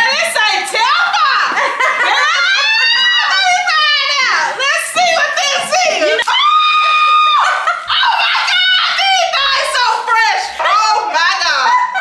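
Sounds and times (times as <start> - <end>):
people shrieking and laughing: 0.8 - 12.0
excited squeal: 6.2 - 9.7.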